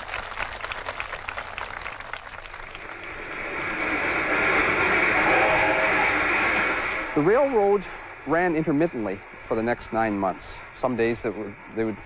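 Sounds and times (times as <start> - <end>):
audience applauding: 0.0 - 3.6.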